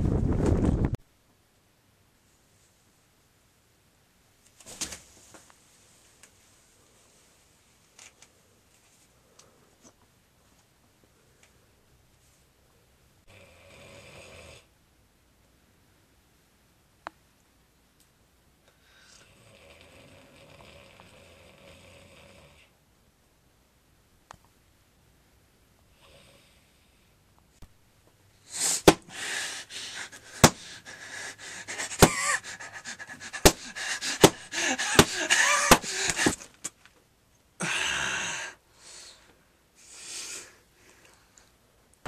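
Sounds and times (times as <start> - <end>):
man snoring: 13.3 - 14.7, 19.2 - 22.7
man panting: 28.5 - 36.6, 37.6 - 39.1
man groaning: 31.4 - 36.4, 37.6 - 38.6.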